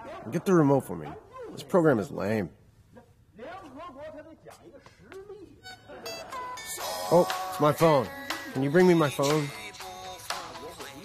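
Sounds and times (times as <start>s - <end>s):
faint background music: 0.0s - 11.0s
mobile phone ringtone: 5.7s - 9.7s.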